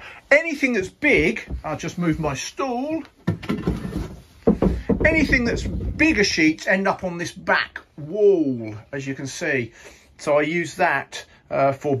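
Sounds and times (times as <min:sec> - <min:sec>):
stool scraping on concrete floor: 0:03.3 - 0:06.2.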